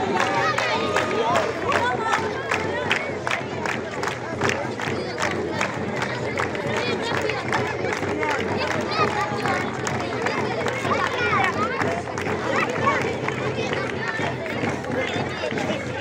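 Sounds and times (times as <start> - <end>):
children's high voices: 0.0 - 3.2, 4.9 - 16.0
crowd babble: 0.0 - 16.0.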